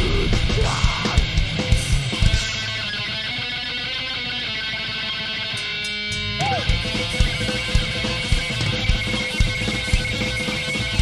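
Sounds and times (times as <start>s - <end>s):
electric guitar ringing: 0.0s - 11.0s.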